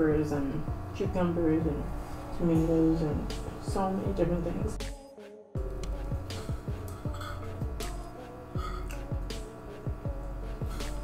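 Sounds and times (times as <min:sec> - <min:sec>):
background music with beat: 0:02.6 - 0:11.0.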